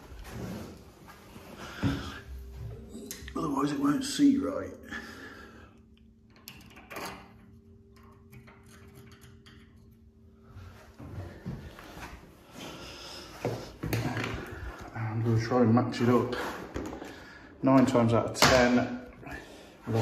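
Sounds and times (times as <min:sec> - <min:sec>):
faint steady hum: 0:00.0 - 0:16.0
knocks and handling noise: 0:16.4 - 0:17.2.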